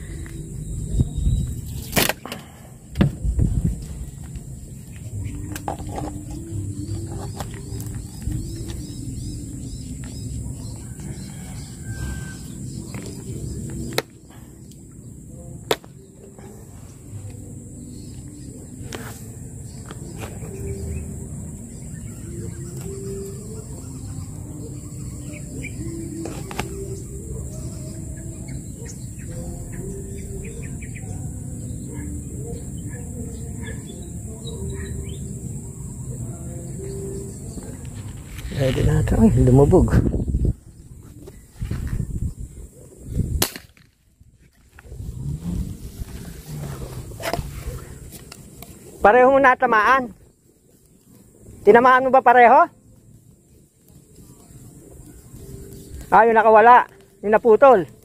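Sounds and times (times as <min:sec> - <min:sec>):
faint bird chirps: 0:00.0 - 0:01.9
low uneven rumble: 0:44.2 - 0:49.0.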